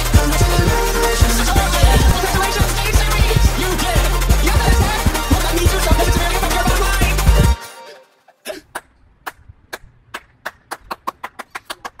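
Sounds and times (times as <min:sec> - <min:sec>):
hand claps: 0:08.8 - 0:12.0.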